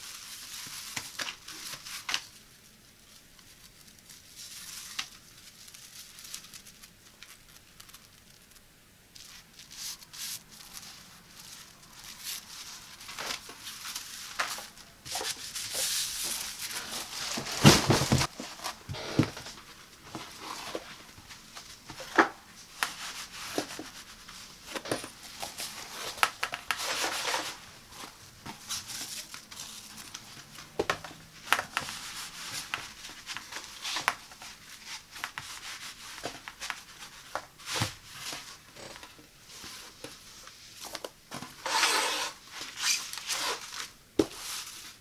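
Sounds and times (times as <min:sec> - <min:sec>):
sharper scrapes on rug: 0:41.6 - 0:42.4
rug pad rubbing on tabletop: 0:41.6 - 0:43.7.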